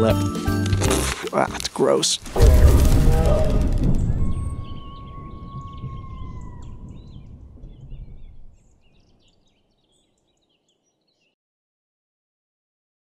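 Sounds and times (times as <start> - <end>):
low rumble: 2.3 - 8.8
bird chirps: 3.9 - 11.4.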